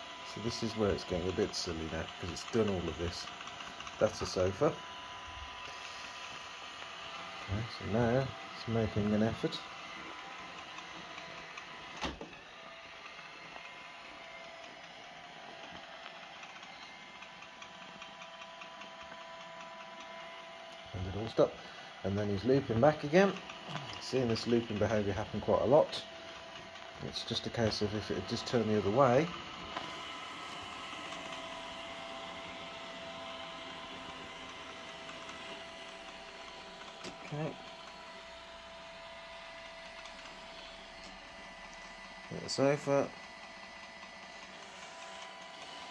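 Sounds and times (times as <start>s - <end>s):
robot vacuum motor whir: 0.0s - 45.9s.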